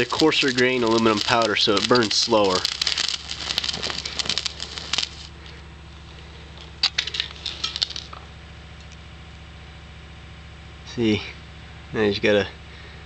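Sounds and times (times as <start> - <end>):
scattered pops: 0.0 - 5.4, 6.7 - 8.2
thermite sputtering and crackling: 0.0 - 9.0
steady low hum: 0.0 - 13.0.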